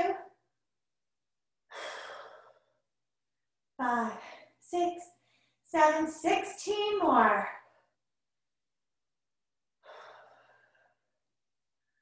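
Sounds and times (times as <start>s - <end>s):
woman breathing out: 1.7s - 2.8s, 9.8s - 11.1s.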